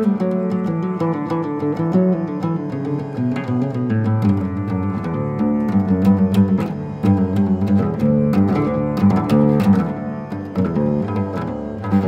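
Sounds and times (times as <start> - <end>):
flamenco guitar playing: 0.0 - 12.0.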